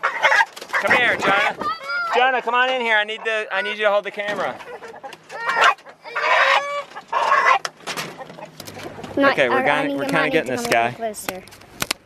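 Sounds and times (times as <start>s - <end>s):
rooster squawking: 4.7s - 8.6s.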